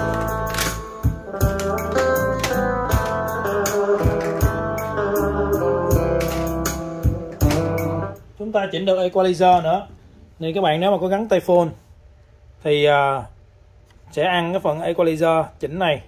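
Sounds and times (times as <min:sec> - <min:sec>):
music with strong bass beat: 0:00.0 - 0:08.2.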